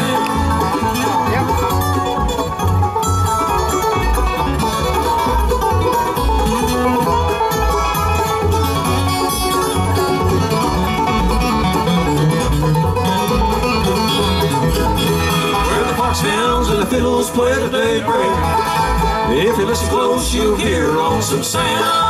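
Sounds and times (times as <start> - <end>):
acoustic guitar: 0.0 - 22.0
banjo: 0.0 - 22.0
mandolin: 0.0 - 22.0
upright bass line: 0.0 - 22.0.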